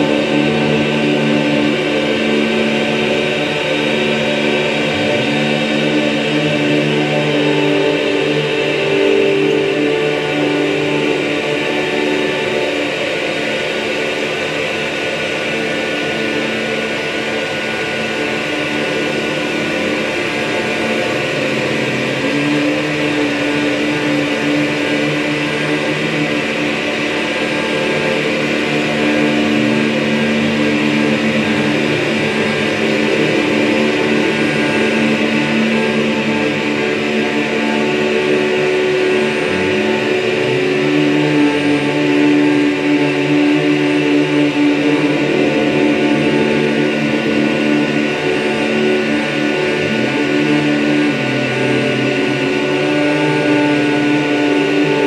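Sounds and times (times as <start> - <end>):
electronic drone of processed voices: 0.0 - 55.0
hissy electronic drone: 0.0 - 55.0.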